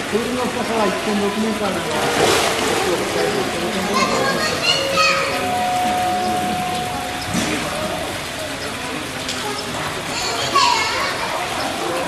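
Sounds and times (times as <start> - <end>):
children chattering: 2.6 - 12.0
child shouting high-pitched: 4.0 - 5.4.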